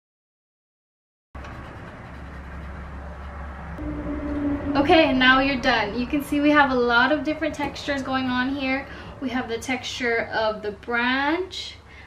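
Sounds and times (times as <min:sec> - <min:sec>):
low hum with faint hiss: 0:03.8 - 0:12.0
woman speaking: 0:04.7 - 0:11.8.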